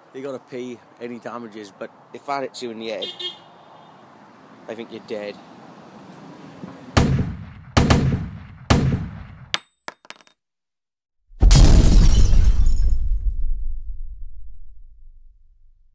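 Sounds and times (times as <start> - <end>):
loud sharp bangs: 6.9 - 9.5
loud crash: 11.4 - 15.3.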